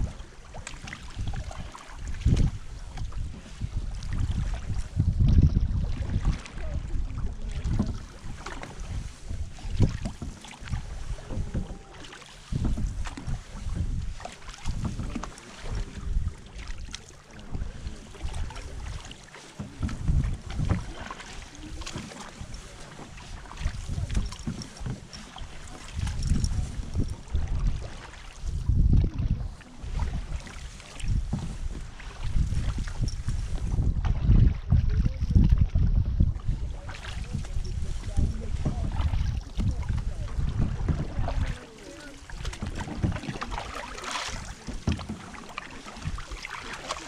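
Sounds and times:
paddle strokes in water: 0.0s - 47.0s
wind rumbling on microphone: 0.0s - 47.0s.

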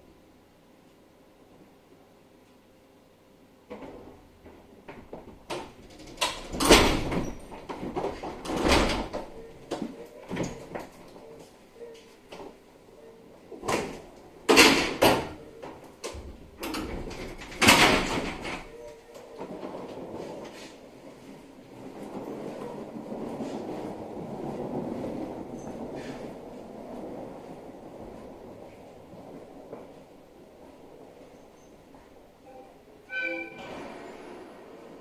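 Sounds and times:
low hum of standing train: 0.0s - 35.0s
train doors sliding shut: 4.9s - 10.9s, 13.6s - 35.0s.

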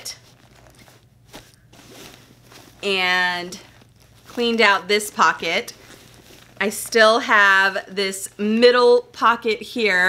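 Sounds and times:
bag rustling: 0.0s - 7.8s.

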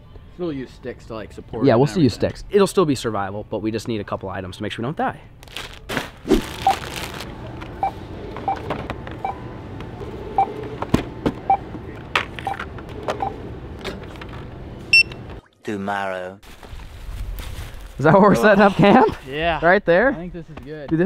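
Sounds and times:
barcode scanner beeping: 14.9s - 15.2s.

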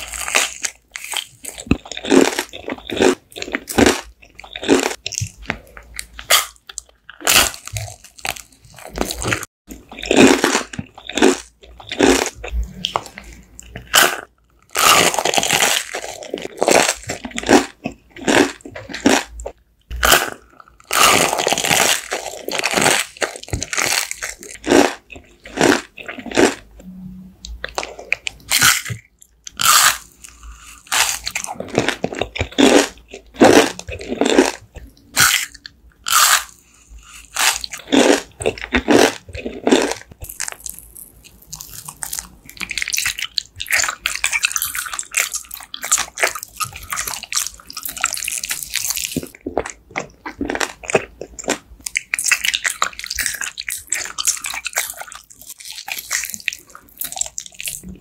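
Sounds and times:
crunchy biting of candies: 0.0s - 26.7s, 27.6s - 58.0s
chewing sweets: 0.0s - 26.8s, 27.4s - 58.0s.

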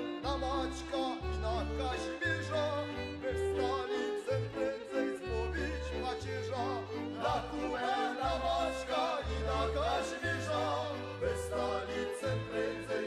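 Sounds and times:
instrumental backing with bass line: 0.0s - 13.0s.

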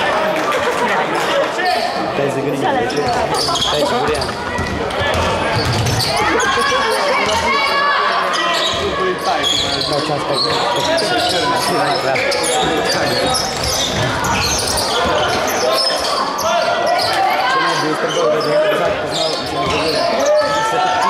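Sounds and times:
voices of players and spectators: 0.0s - 21.0s.

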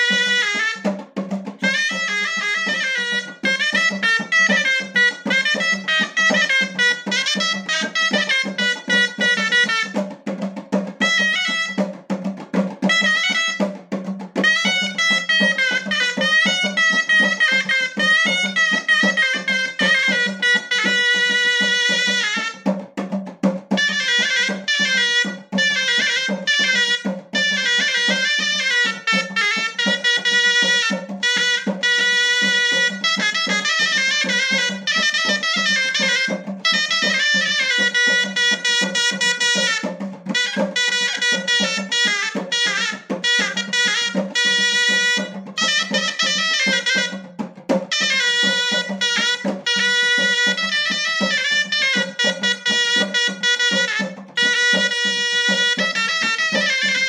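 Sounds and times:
drum beat: 0.0s - 57.0s
shawm playing nasal melody: 0.0s - 57.0s.

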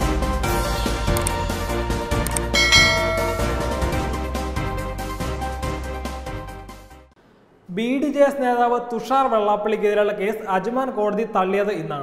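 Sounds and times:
background music: 0.0s - 7.1s
bell chime: 2.5s - 4.6s.

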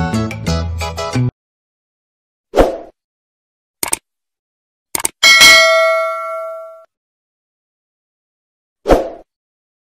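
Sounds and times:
notification bell ding: 5.2s - 6.9s.

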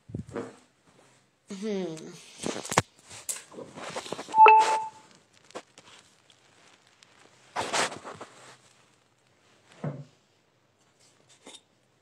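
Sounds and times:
faint clicks and rustles: 2.2s - 4.4s, 5.0s - 9.9s
short electronic beep: 4.4s - 5.0s.

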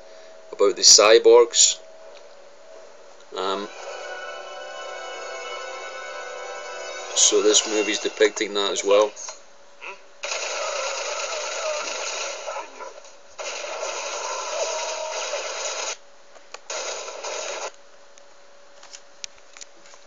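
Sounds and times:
faint hum: 0.0s - 20.0s.

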